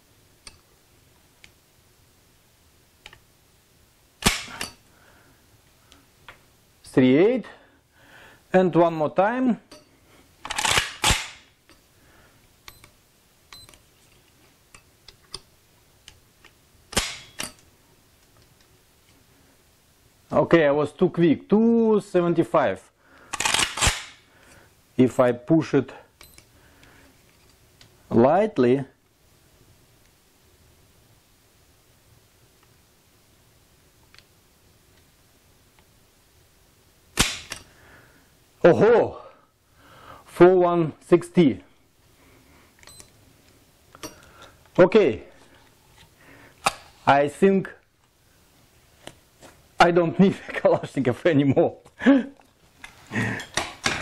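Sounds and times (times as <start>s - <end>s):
metallic clack of rifle: 4.2s - 4.8s, 10.4s - 11.5s, 16.9s - 17.7s, 23.4s - 24.2s, 37.2s - 37.7s
rifle hammer metallic snap: 4.2s - 4.8s, 37.2s - 37.6s.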